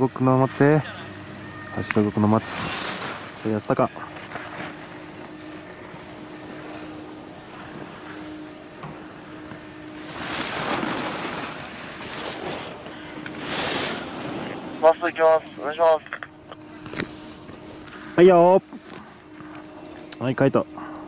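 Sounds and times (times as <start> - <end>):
faint steady hum: 0.0 - 21.0
skis scraping on snow: 2.0 - 6.9, 10.0 - 16.0.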